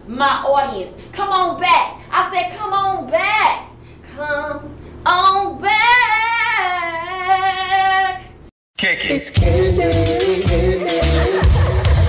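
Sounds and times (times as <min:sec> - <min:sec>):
woman singing: 0:04.1 - 0:08.4.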